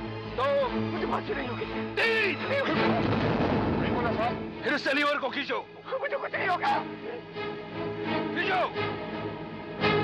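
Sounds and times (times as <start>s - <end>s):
loud rumbling crash: 3.0s - 4.5s.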